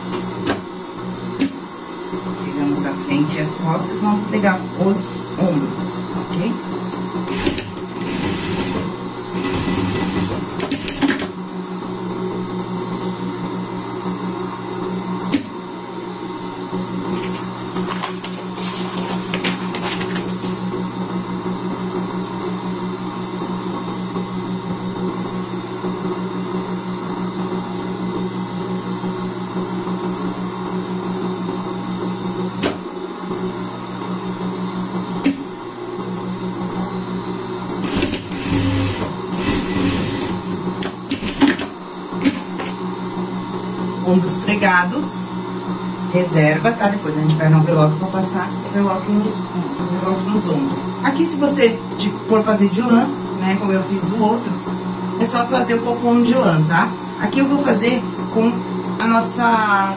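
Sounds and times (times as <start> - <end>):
sewing machine stitching: 7.3 - 11.3, 37.8 - 42.8.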